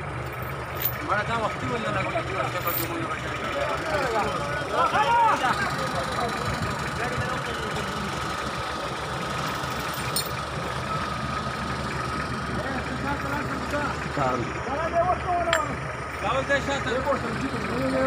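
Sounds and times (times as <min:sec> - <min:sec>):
pickup truck engine idling: 0:00.0 - 0:18.0
men calling out: 0:01.3 - 0:08.2, 0:12.5 - 0:18.0.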